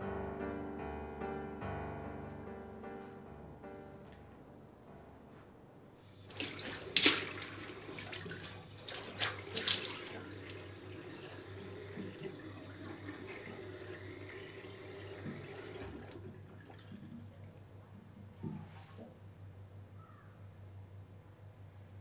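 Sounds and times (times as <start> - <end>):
sharp water splashes: 6.0 - 12.3
tap water running into sink: 6.0 - 17.2.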